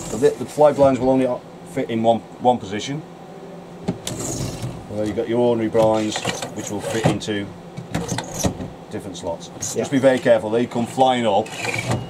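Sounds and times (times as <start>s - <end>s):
blind rattling whirr: 4.0s - 4.8s, 11.4s - 12.0s.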